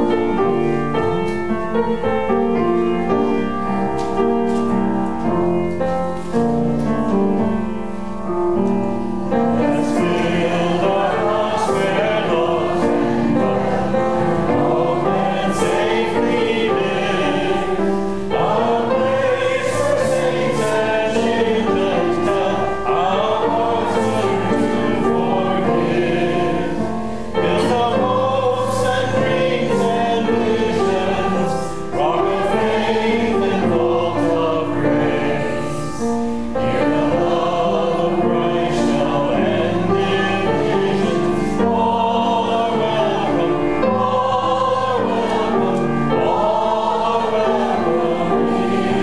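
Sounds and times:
congregation singing a hymn: 0:00.0 - 0:49.0
piano accompaniment: 0:00.0 - 0:49.0.

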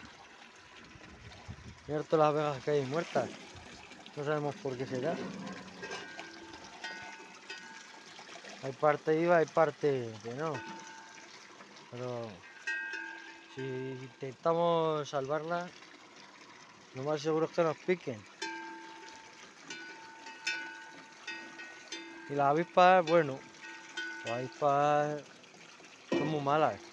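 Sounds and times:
water trickling: 0:00.0 - 0:26.9
metal cattle bell clanking: 0:04.5 - 0:08.1, 0:10.3 - 0:11.4, 0:12.4 - 0:14.3, 0:18.4 - 0:24.8, 0:26.1 - 0:26.8.

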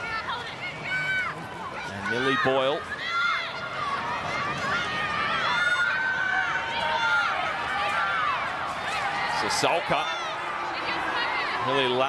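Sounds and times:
stadium crowd shouting and cheering: 0:00.0 - 0:12.0.

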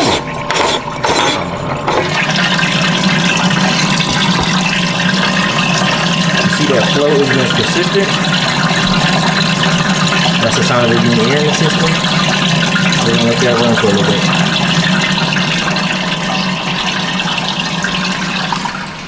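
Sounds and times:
electric pump hum: 0:00.0 - 0:19.0
liquid rushing and churning: 0:00.0 - 0:19.0.

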